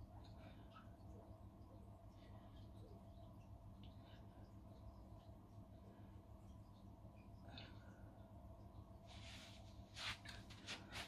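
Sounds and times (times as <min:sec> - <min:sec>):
faint steady hum: 0:00.0 - 0:11.0
person rustling on carpet: 0:09.0 - 0:11.0.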